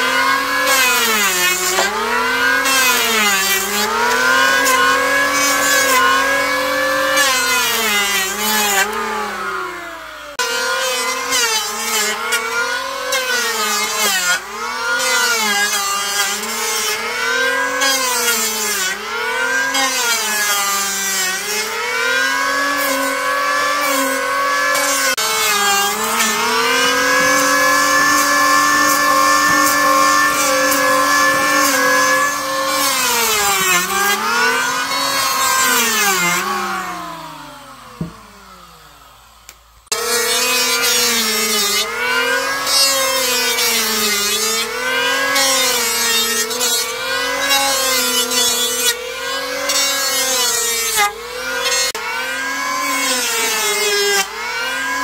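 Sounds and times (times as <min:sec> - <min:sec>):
electric planer shaving wood: 0:00.0 - 0:55.0.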